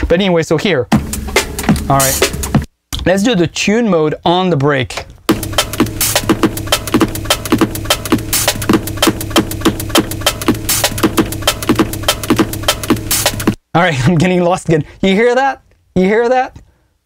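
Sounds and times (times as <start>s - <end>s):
sampled drum break: 0.0s - 3.2s, 5.3s - 13.6s.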